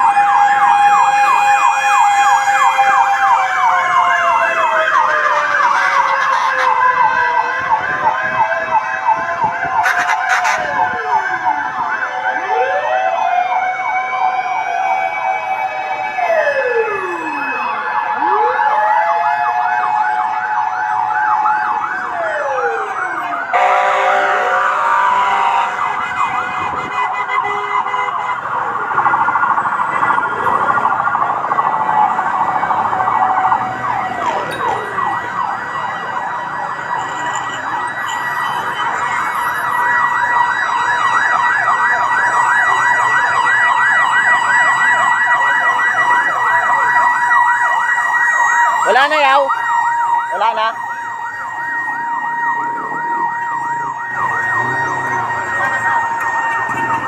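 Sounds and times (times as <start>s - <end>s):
fire truck sirens wailing: 0.0s - 57.0s.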